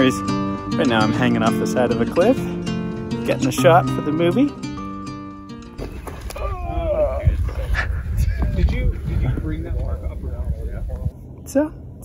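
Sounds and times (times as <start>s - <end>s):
wind rumbling on microphone: 5.8s - 12.0s.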